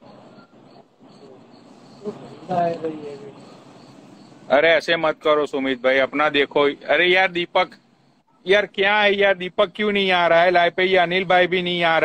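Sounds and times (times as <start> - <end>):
high-pitched chirp: 0.0 - 4.5
faint background noise: 0.0 - 12.0.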